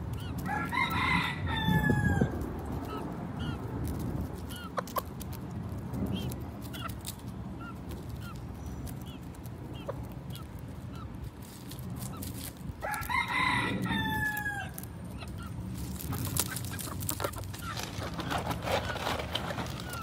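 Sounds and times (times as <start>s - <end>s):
chickens clucking: 0.0s - 20.0s
rooster crowing: 0.4s - 2.3s, 12.8s - 14.8s.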